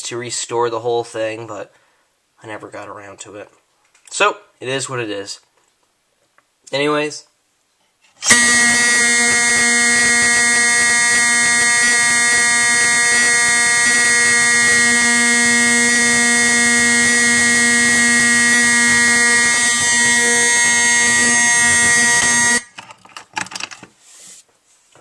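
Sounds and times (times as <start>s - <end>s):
fire alarm horn blaring: 8.3s - 22.7s.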